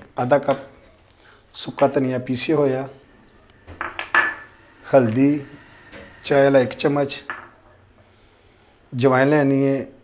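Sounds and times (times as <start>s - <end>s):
glass bowls clinking: 1.6s - 2.5s, 3.7s - 4.7s, 7.2s - 7.6s
glass knocks with ringing: 3.7s - 4.5s.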